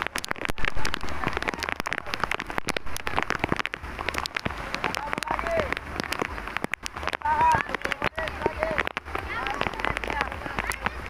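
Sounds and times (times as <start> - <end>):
dense crackling and tapping: 0.0 - 11.0.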